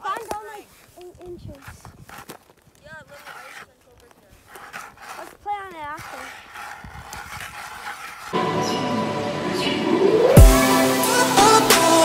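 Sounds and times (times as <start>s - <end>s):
ice auger scraping and crunching: 0.0s - 8.4s
loud electronic music: 8.4s - 12.0s.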